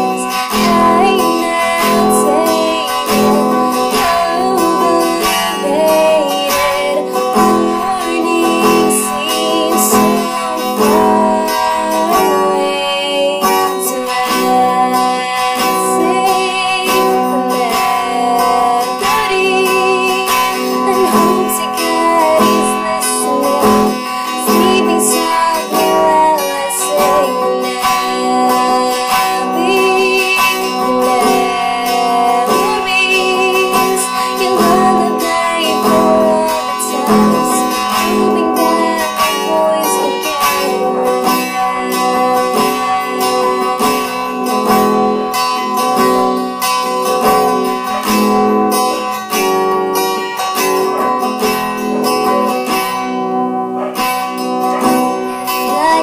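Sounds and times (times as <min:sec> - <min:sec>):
strummed acoustic guitar: 0:00.0 - 0:56.0
woman singing: 0:00.0 - 0:56.0.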